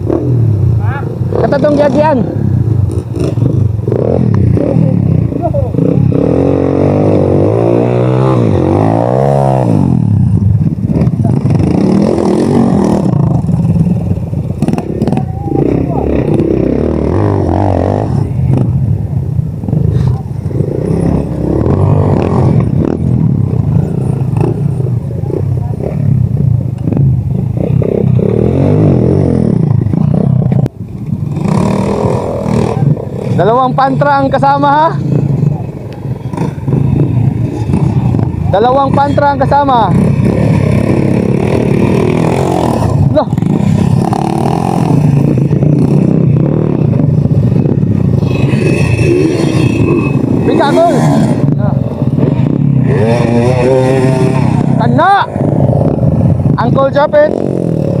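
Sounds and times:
dirt-bike engines running: 0.0 - 58.0.

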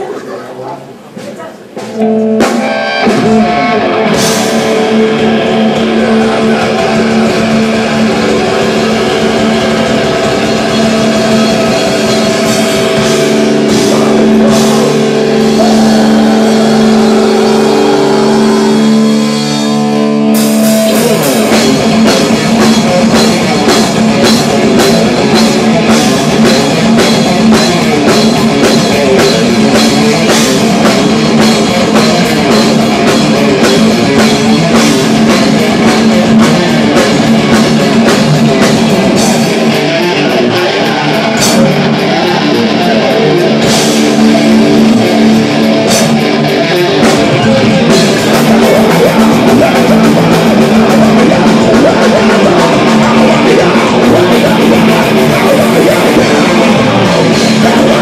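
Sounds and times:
distorted electric guitars: 0.8 - 58.0
drums and cymbals: 0.8 - 58.0.

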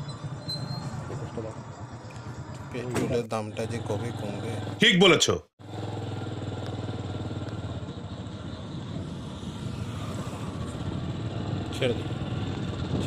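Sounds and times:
road noise: 0.0 - 13.0
motorcycle engine running: 5.6 - 13.0.

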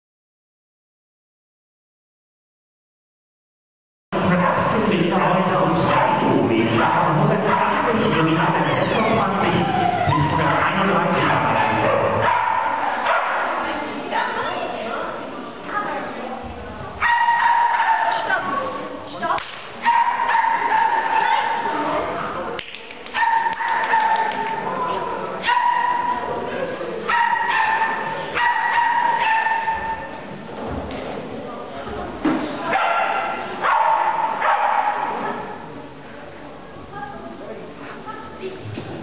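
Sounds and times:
dog yapping: 17.0 - 18.4, 27.1 - 30.1.

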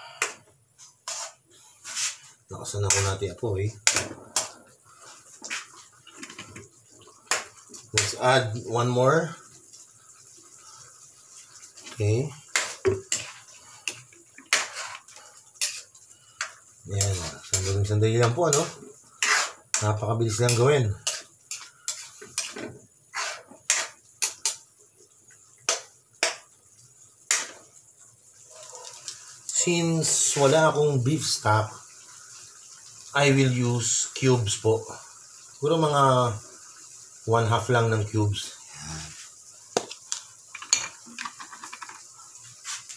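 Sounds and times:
metal spoon scraping a pan: 1.0 - 3.1, 11.8 - 17.9, 18.5 - 19.9, 20.5 - 24.6, 27.3 - 27.6
metal spoon stirring thick sauce: 18.5 - 19.8.

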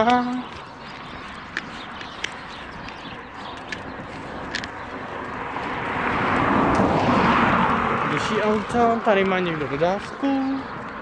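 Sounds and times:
vehicle engine and tyre noise: 0.0 - 11.0.

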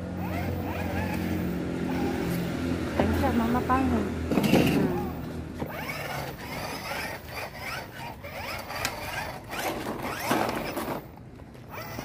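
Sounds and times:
plastic toy motorbike rattling: 0.2 - 2.4, 4.3 - 12.0.

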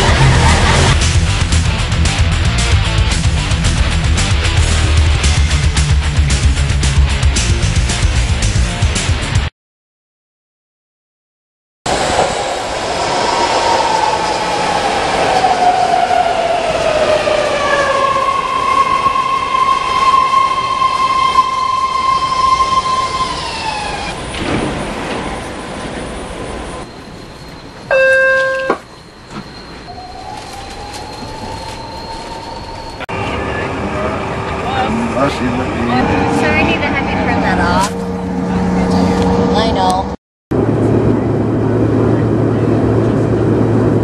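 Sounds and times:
train whine pulling away: 0.0 - 7.8, 11.9 - 44.0
train braking whine: 11.9 - 40.2
short electronic tone: 26.9 - 33.4.

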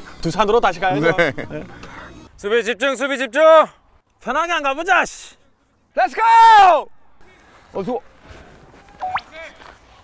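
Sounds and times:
open-air ballfield background: 0.0 - 10.0
rising whistle-like tone: 9.0 - 9.3.

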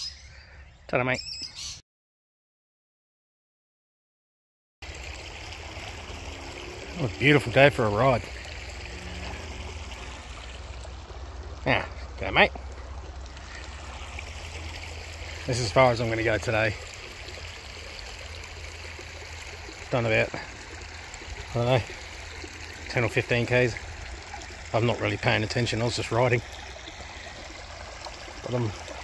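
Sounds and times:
creek flowing: 4.8 - 29.0.

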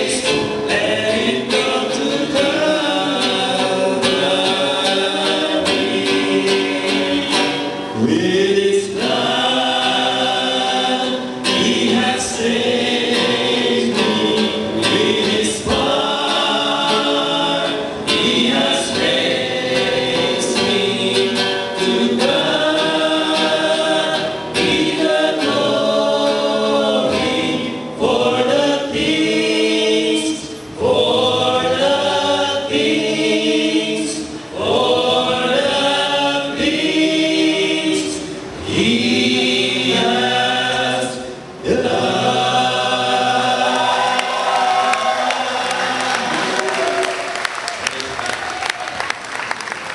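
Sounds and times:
strummed acoustic guitar: 0.0 - 29.6
men singing in harmony: 0.0 - 46.8.

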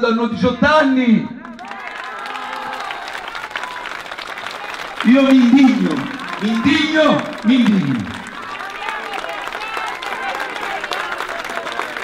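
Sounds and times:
crowd applauding: 1.5 - 12.0.

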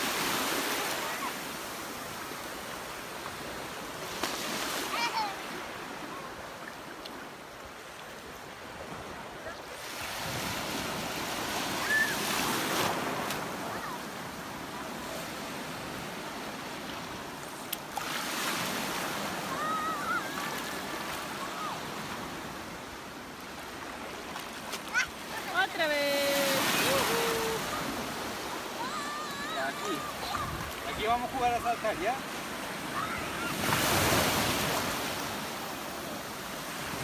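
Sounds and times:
small waves breaking on shore: 0.0 - 37.0.

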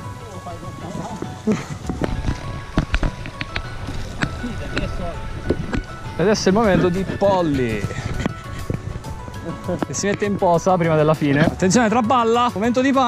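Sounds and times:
background music with held tones: 0.0 - 13.0
footsteps on wooden planks: 0.8 - 10.3.

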